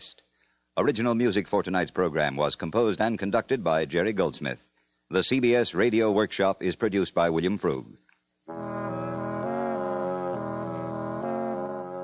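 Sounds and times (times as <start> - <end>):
sustained brass chords: 8.5 - 12.0.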